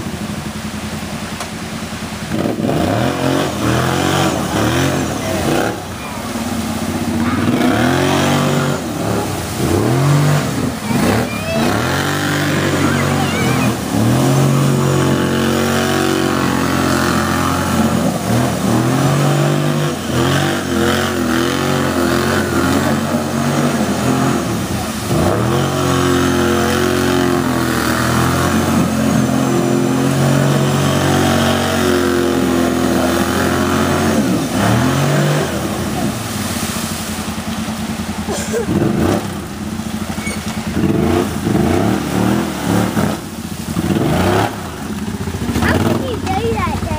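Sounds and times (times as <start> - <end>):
atv engine revving: 0.0 - 46.9
water splashing off tyres: 0.0 - 46.9.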